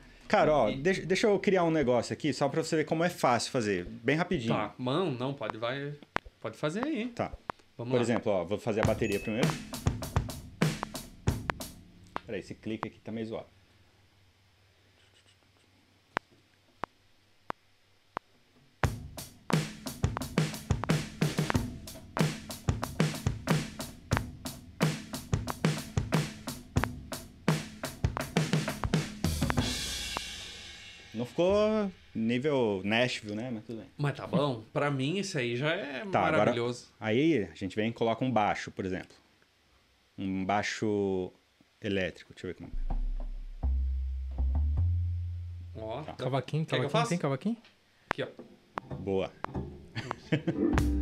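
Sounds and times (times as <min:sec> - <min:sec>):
drum beat: 0:08.8 - 0:12.3, 0:18.8 - 0:32.3, 0:42.7 - 0:45.8, 0:50.8 - 0:51.0
cymbal crash: 0:29.5 - 0:32.3
light drum hits: 0:42.7 - 0:45.6
deep electric bass notes: 0:42.7 - 0:46.0, 0:50.7 - 0:51.0.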